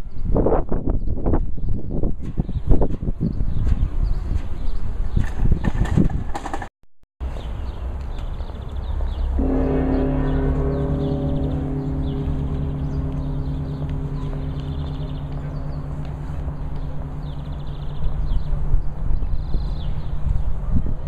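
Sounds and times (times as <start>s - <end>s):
large church bell ringing: 9.4s - 20.7s.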